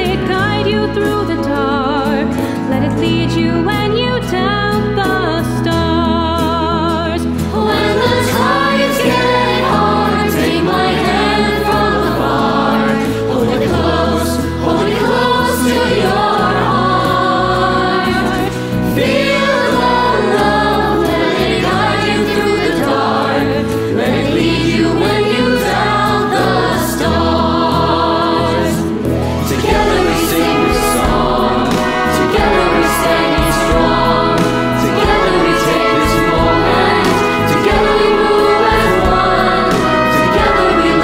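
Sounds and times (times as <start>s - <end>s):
children's choir with band: 7.3s - 41.0s.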